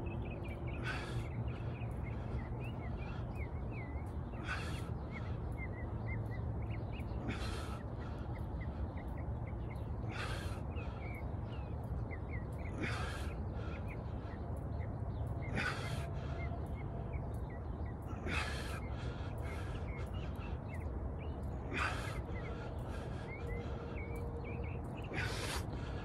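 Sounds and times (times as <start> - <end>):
birds chirping: 0.0 - 26.0
steady low rumble: 0.0 - 26.0.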